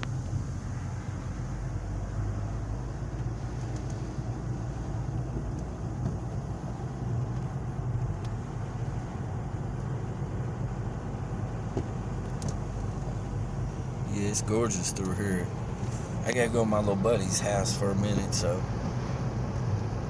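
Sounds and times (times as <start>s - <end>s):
car engine and tyre noise: 0.0s - 20.0s.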